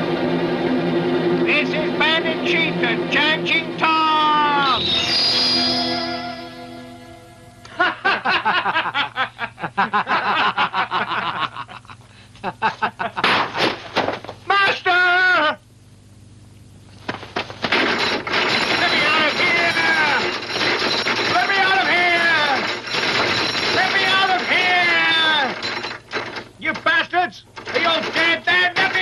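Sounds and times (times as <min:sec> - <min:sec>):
falling pitched tones: 0:00.7 - 0:07.7
iron bars rattling: 0:17.4 - 0:29.0.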